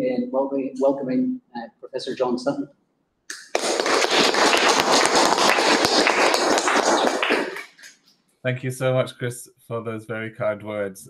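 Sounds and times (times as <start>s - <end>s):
people applauding: 3.3s - 8.0s.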